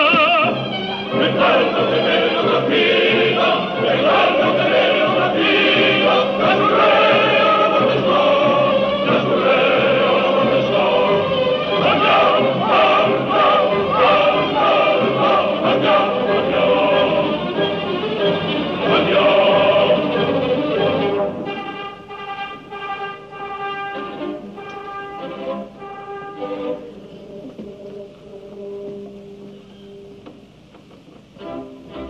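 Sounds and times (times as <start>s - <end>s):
operatic singing with vibrato: 0.0s - 29.7s
orchestra playing: 0.0s - 29.9s.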